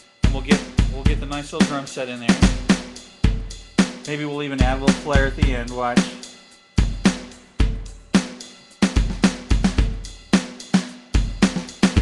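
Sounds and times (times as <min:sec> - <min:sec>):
rock drum beat: 0:00.2 - 0:12.0.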